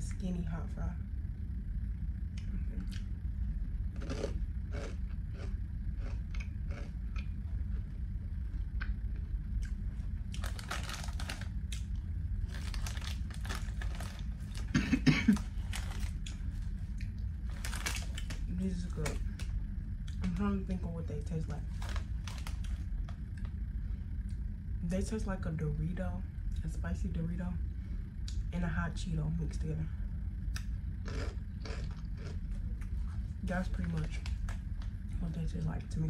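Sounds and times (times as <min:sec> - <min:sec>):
crunching and chewing chips: 0:03.9 - 0:20.3, 0:21.6 - 0:23.6, 0:30.5 - 0:35.1
foil snack bag crinkling: 0:10.3 - 0:19.5, 0:21.4 - 0:23.2.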